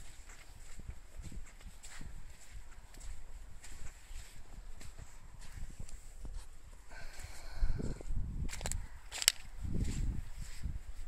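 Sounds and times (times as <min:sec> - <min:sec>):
footsteps on sandy ground: 0:00.0 - 0:11.0.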